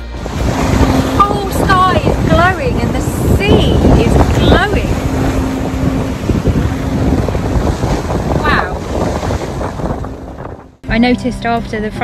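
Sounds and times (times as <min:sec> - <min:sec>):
rushing water: 0:00.0 - 0:12.0
wind buffeting microphone: 0:00.0 - 0:12.0.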